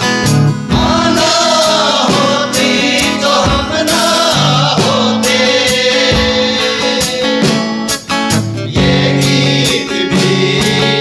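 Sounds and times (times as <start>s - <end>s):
strummed acoustic guitar: 0.0s - 11.0s
men singing together: 0.6s - 11.0s.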